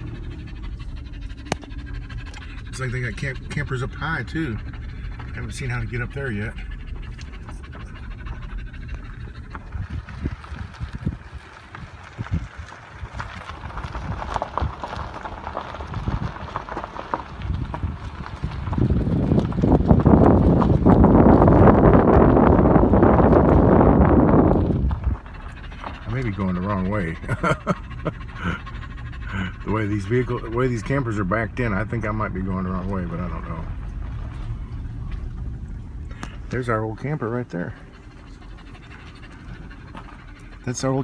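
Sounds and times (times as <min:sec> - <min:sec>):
truck rumbling on gravel: 0:00.0 - 0:41.0.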